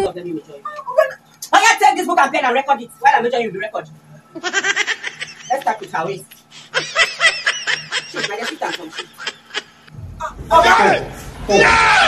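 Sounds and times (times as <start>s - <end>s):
person laughing: 4.4s - 9.9s.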